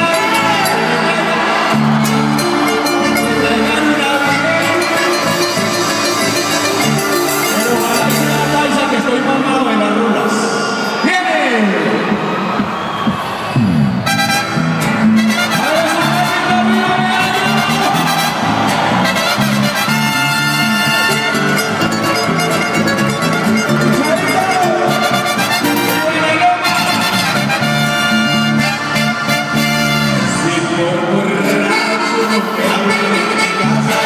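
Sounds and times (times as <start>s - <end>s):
live band through pa: 0.0s - 34.0s.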